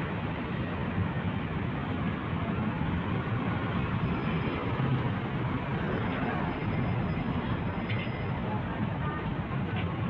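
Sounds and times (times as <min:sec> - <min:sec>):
busy road traffic: 0:00.0 - 0:10.0.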